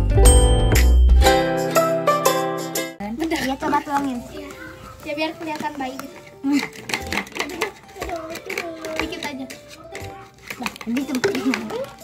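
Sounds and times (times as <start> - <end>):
background music: 0.0 - 12.0
children talking: 3.0 - 12.0
spoon scraping a plastic tub: 4.4 - 12.0.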